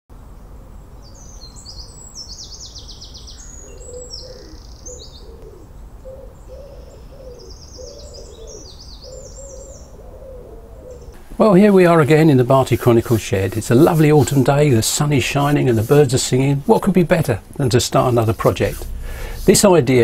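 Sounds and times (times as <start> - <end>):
songbird singing: 0.2 - 20.0
low cooing call: 3.4 - 11.2.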